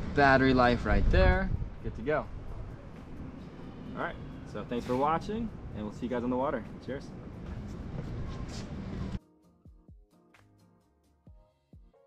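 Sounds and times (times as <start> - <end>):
outdoor background noise: 0.0 - 9.2
quiet music with low drum beats: 0.8 - 12.0.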